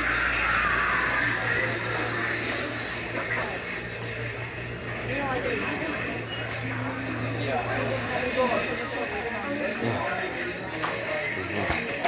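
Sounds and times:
steady low hum: 0.0s - 11.4s
indistinct voices: 0.0s - 12.0s.

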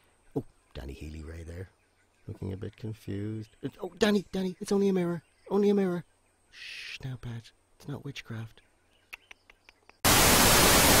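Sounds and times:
loud static hiss: 10.0s - 11.0s.

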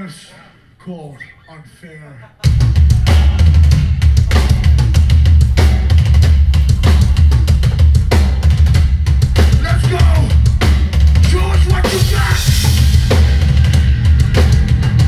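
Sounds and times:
punk band playing live: 2.4s - 15.0s.

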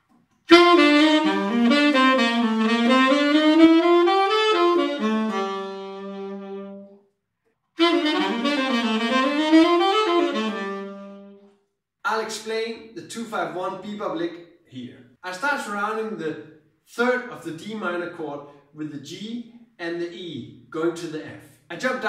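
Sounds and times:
tenor saxophone jazz lick: 0.3s - 7.1s, 7.8s - 11.6s.

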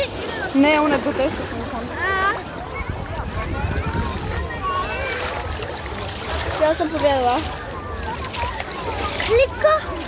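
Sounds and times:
chatter of distant voices: 0.0s - 10.0s
water splashing: 0.0s - 10.0s
wind rumbling on microphone: 1.2s - 9.4s.

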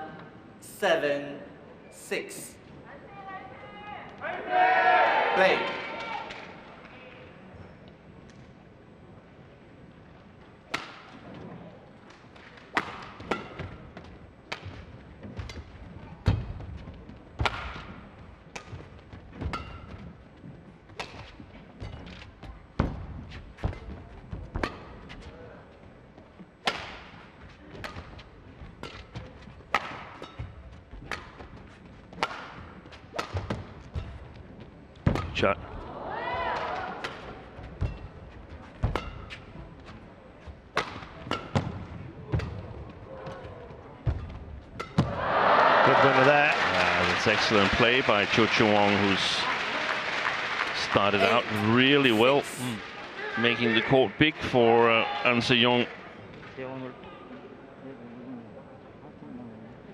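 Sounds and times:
rackets striking shuttlecock: 10.7s - 11.2s, 32.2s - 34.1s, 40.8s - 41.7s.

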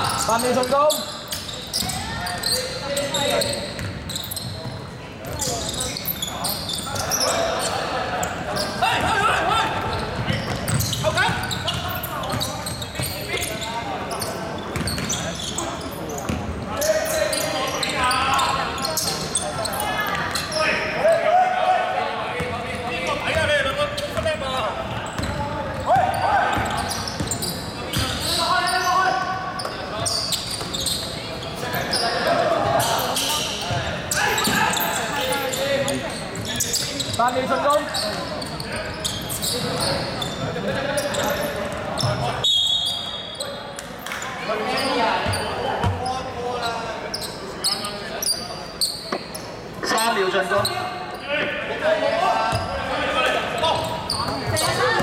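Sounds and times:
basketball bouncing on wooden court: 3.7s - 5.5s, 9.0s - 13.2s, 14.7s - 15.2s, 25.0s - 28.2s.

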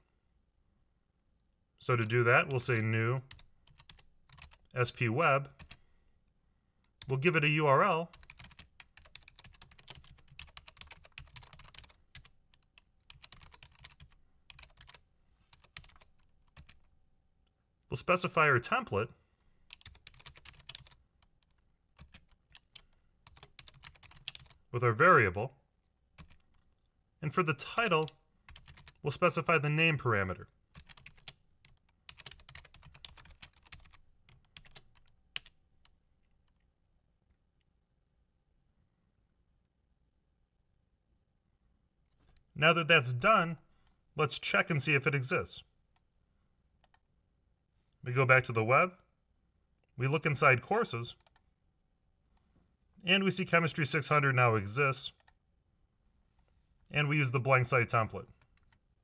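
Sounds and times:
keyboard typing: 2.4s - 4.7s, 5.5s - 5.8s, 8.1s - 16.9s, 19.7s - 24.6s, 26.2s - 26.8s, 27.9s - 29.0s, 30.7s - 36.7s, 46.8s - 47.0s, 51.2s - 51.5s.

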